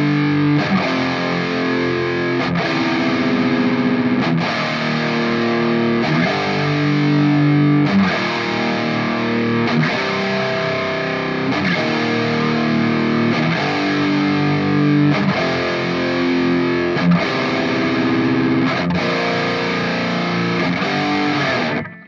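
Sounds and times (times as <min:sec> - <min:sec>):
distorted electric guitar chords: 0:00.0 - 0:22.0.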